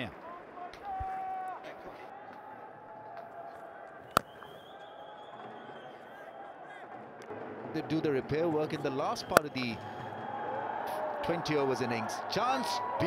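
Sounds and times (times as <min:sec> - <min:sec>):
stadium crowd murmur: 0:00.0 - 0:13.0.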